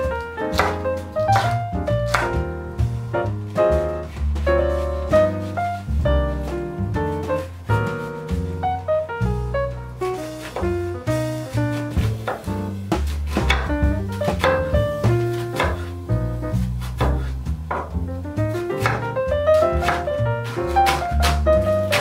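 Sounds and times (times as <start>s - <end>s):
double bass line: 0.0s - 22.0s
jazz piano: 0.0s - 22.0s
knife chopping on cutting board: 0.4s - 2.4s, 11.6s - 16.0s, 16.6s - 22.0s.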